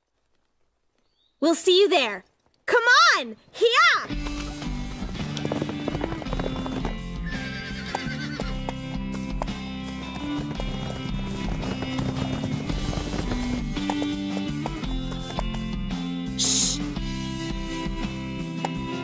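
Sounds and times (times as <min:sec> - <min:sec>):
background music: 0:03.6 - 0:19.0
horse hoofbeats: 0:04.0 - 0:19.0
horse whinnying: 0:04.4 - 0:08.8.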